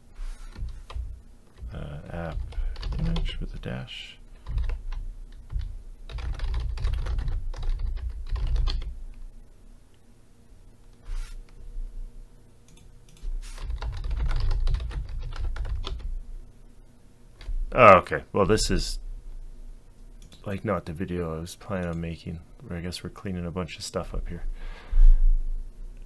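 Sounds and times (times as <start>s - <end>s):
typing on computer keyboard: 2.3s - 3.2s, 4.4s - 8.9s, 12.7s - 16.1s.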